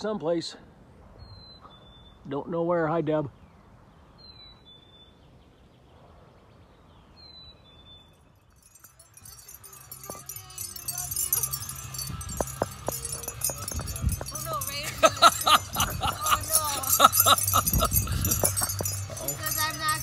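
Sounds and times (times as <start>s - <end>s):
bird chirping: 1.1s - 20.0s
wind buffeting microphone: 8.6s - 20.0s.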